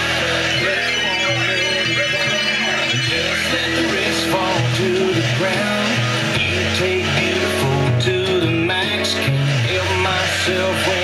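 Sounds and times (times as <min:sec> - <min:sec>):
country song on radio: 0:00.0 - 0:11.0.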